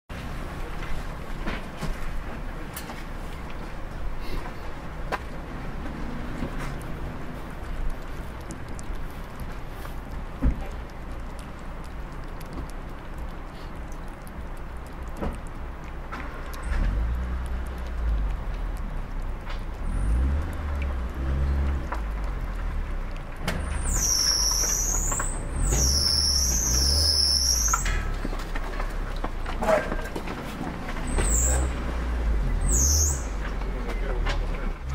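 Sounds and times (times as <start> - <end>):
vehicle engine rumbling: 0.1 - 34.9
cat chewing clicks: 6.6 - 23.5
high wavering squeal: 23.7 - 28.1.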